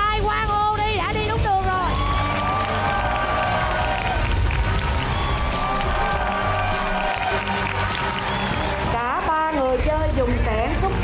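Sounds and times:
background music with bending tones: 0:00.3 - 0:11.0.

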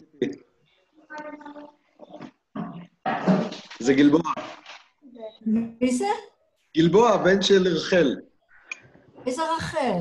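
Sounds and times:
high-pitched wordless vocal sound: 0:01.0 - 0:02.4.

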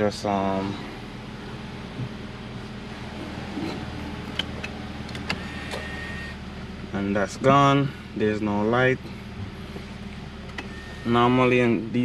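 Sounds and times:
car engine idling: 0:00.0 - 0:12.0
parking brake motor whine: 0:00.0 - 0:12.0.

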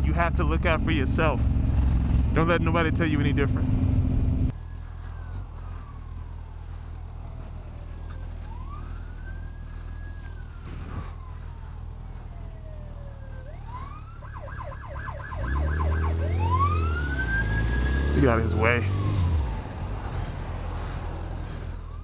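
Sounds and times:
heavy low rumble: 0:00.0 - 0:07.0
low engine hum: 0:00.0 - 0:22.0
siren wailing and yelping: 0:04.5 - 0:19.8.

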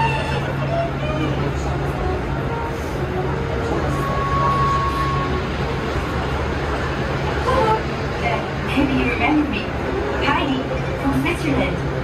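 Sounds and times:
faint voices: 0:00.0 - 0:12.0
shuttle train rumble: 0:00.0 - 0:12.0.

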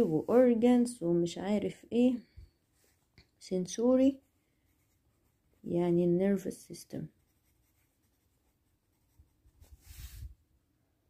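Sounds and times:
pen scratching on paper: 0:07.2 - 0:10.1.

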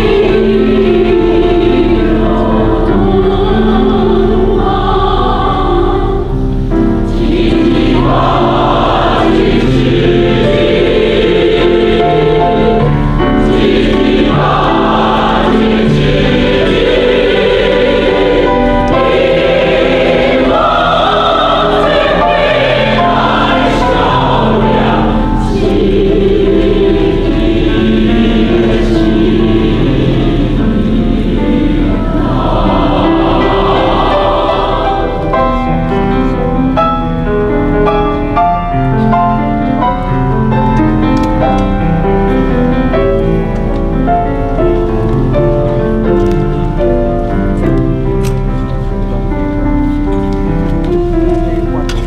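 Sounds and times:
mixed choir singing: 0:00.0 - 0:52.0.

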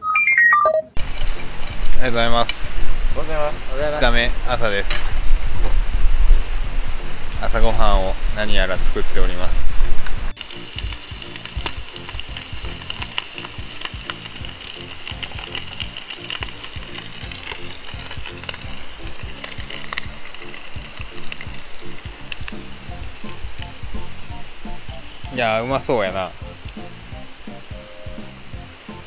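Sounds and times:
food sizzling in a pan: 0:01.0 - 0:29.0.

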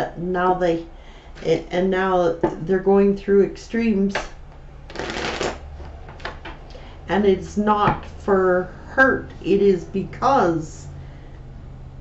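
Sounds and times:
cards being shuffled: 0:04.9 - 0:05.6.

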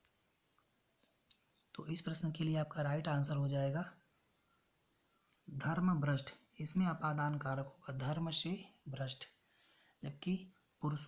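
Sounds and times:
man speaking: 0:01.8 - 0:04.0, 0:05.5 - 0:09.4, 0:10.0 - 0:11.0.

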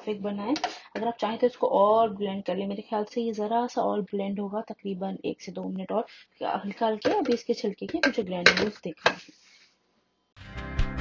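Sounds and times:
woman speaking: 0:00.0 - 0:09.2.

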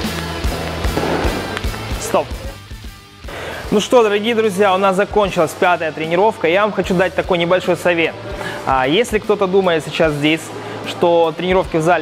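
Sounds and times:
drum beat: 0:00.0 - 0:02.4
bass line: 0:00.0 - 0:03.2.

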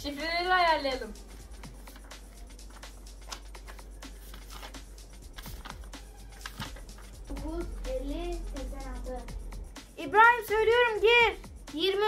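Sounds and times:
quiet background music: 0:00.0 - 0:12.0
paper rustling and tapping: 0:01.8 - 0:07.2.

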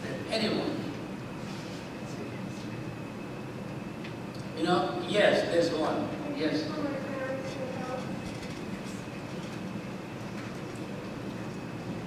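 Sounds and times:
low room equipment rumble: 0:00.0 - 0:12.0.

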